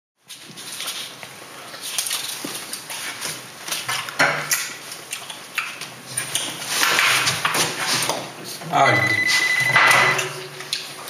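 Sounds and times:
tableware and glass clinking: 0:09.0 - 0:10.7.

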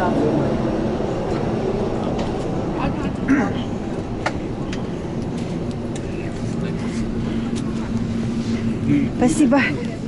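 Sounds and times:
low cabin rumble: 0:00.0 - 0:10.0
steady hum tone: 0:00.1 - 0:10.0.

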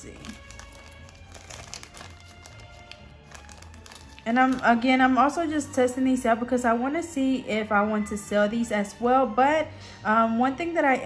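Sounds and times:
plastic bags crinkling: 0:00.0 - 0:04.8
quiet background music: 0:00.0 - 0:11.0.

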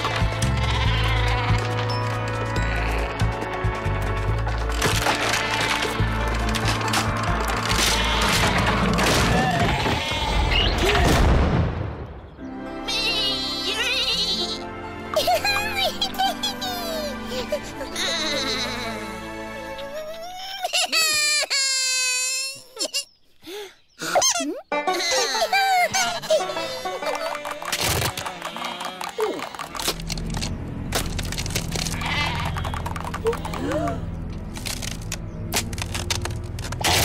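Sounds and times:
sheep bleats: 0:00.0 - 0:03.3, 0:07.7 - 0:10.7, 0:27.2 - 0:29.6, 0:31.9 - 0:32.8
cartoon background music: 0:12.4 - 0:21.4, 0:24.1 - 0:37.0.

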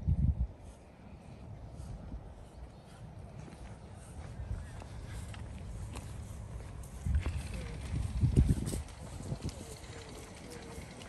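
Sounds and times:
wind rumble on microphone: 0:00.0 - 0:11.0
footsteps on muddy path: 0:01.2 - 0:11.0.

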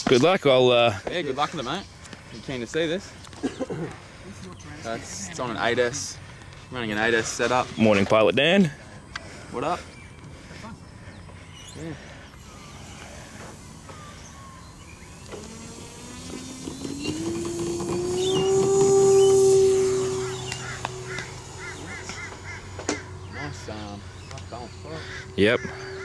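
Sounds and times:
model plane motor whining: 0:11.6 - 0:26.0.

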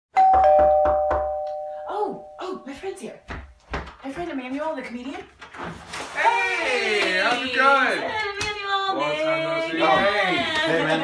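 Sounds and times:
ding-dong doorbell chime: 0:00.1 - 0:02.8.

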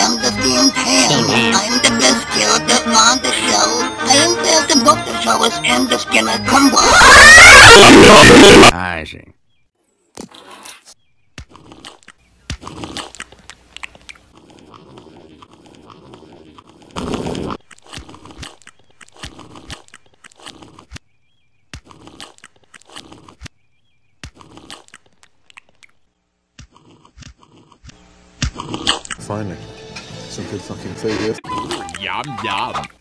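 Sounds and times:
food chewing and crunching: 0:11.4 - 0:29.2.

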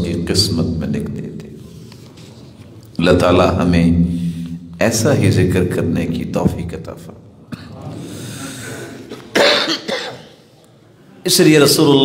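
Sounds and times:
person coughing: 0:08.6 - 0:10.5.

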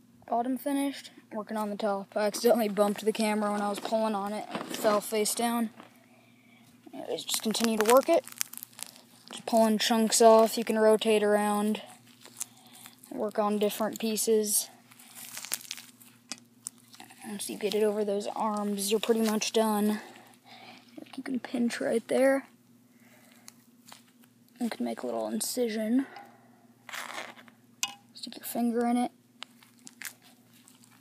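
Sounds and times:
faint crackles of skin tearing: 0:07.2 - 0:09.6, 0:11.8 - 0:13.3, 0:14.7 - 0:19.4, 0:23.2 - 0:24.6, 0:26.9 - 0:27.6, 0:29.4 - 0:31.0
hide tearing from meat: 0:07.5 - 0:09.3, 0:12.0 - 0:12.6, 0:14.9 - 0:17.1, 0:29.5 - 0:31.0.

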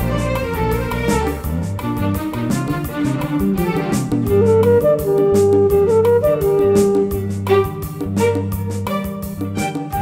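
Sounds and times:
bass: 0:00.0 - 0:10.0
held lead melody: 0:00.0 - 0:10.0
keyboard: 0:00.0 - 0:10.0
tabla percussion: 0:00.0 - 0:10.0.

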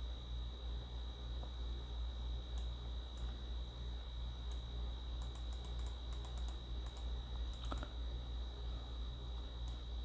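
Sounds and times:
keyboard and mouse clicks: 0:05.2 - 0:07.9.

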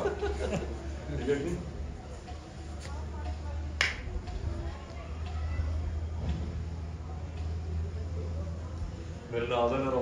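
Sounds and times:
faint voices: 0:00.0 - 0:10.0
sharp snap: 0:03.8 - 0:04.1.

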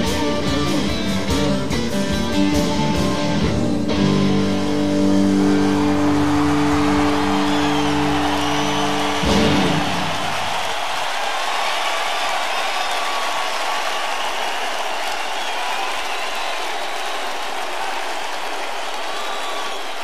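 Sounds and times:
rock band hit: 0:00.0 - 0:10.5
crowd cheering and whistling: 0:04.0 - 0:20.0.

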